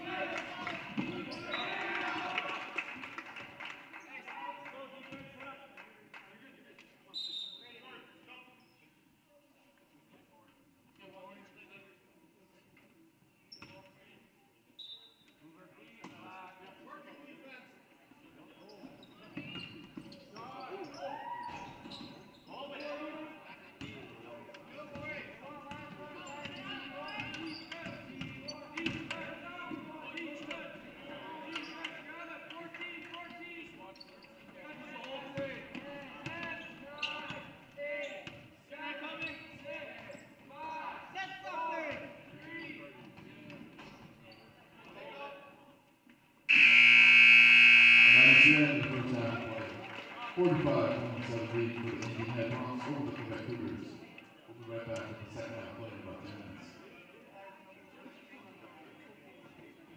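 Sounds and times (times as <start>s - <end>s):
voices of players and spectators: 0.0s - 59.9s
scoreboard buzzer: 46.5s - 48.8s.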